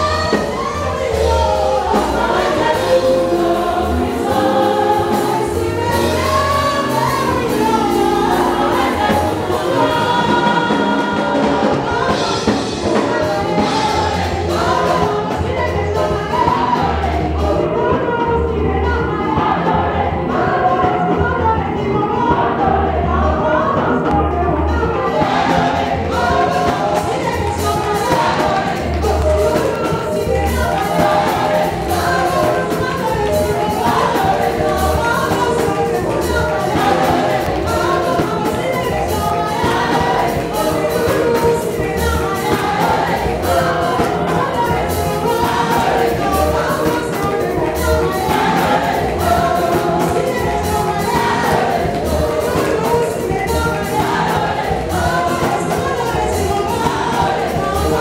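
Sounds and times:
steady drum beat: 0.0s - 18.3s, 23.9s - 58.0s
amplified band: 0.0s - 58.0s
bass: 0.0s - 58.0s
congregation singing gospel song: 0.0s - 58.0s.

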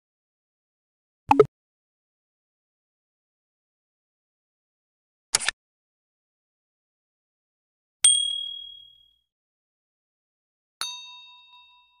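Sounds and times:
sharp click: 5.3s - 5.6s
bright ding chime: 8.1s - 9.1s.

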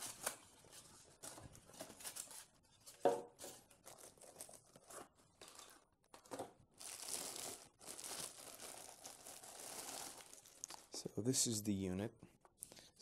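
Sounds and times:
plastic bag crinkling: 3.7s - 11.0s.

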